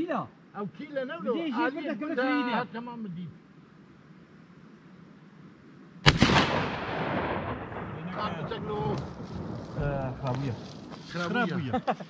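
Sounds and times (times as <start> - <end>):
gunshot with rolling echo: 6.0 - 10.3.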